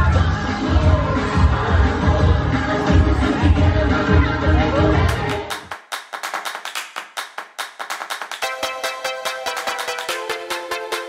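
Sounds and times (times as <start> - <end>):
rapid sharp percussive hits: 5.1 - 11.0
pitched music: 8.3 - 11.0.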